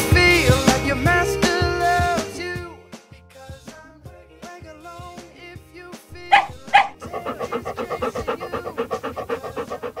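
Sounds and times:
dog barking: 6.2s - 10.0s
dog panting: 6.2s - 10.0s.

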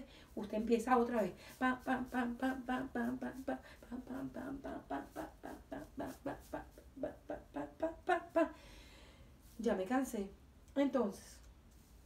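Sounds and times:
woman chanting wordless syllables: 0.0s - 8.6s, 9.5s - 11.5s.

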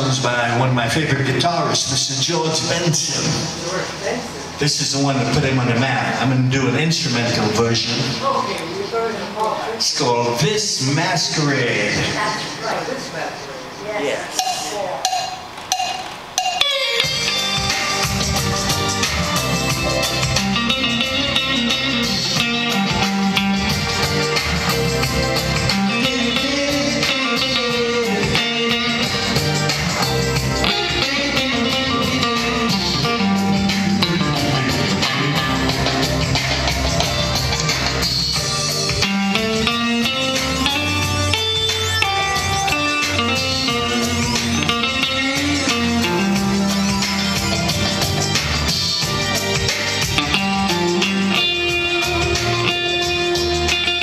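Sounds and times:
woodblock count-in clicks: 14.4s - 16.8s
electric guitar note: 14.4s - 54.0s.

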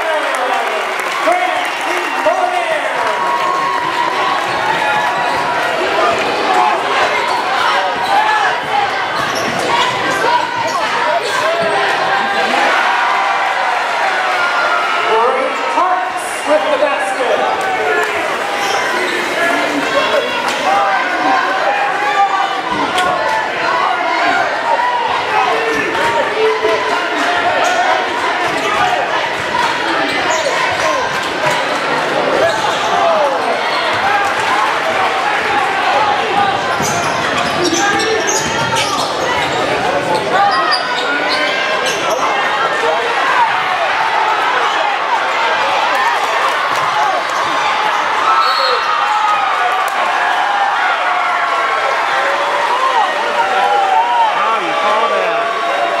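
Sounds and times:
crowd voices: 0.0s - 56.0s.

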